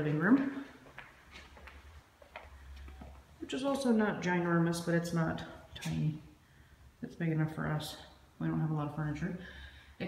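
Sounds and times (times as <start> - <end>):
footsteps on hard floor: 0.2 - 3.3.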